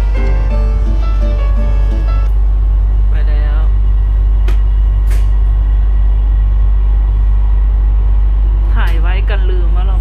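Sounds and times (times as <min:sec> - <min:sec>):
train rumble inside carriage: 0:00.0 - 0:10.0.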